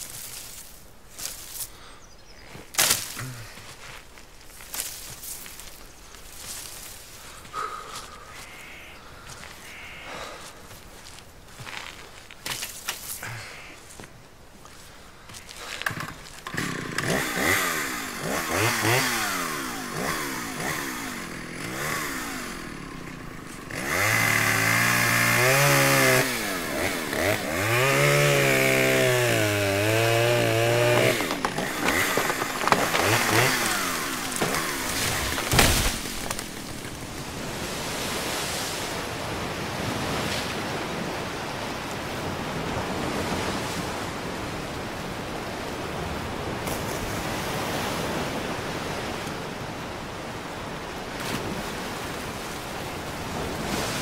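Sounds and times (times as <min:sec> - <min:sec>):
chainsaw revving and cutting: 0:15.8 - 0:38.0
sharp crack: 0:30.0 - 0:37.3.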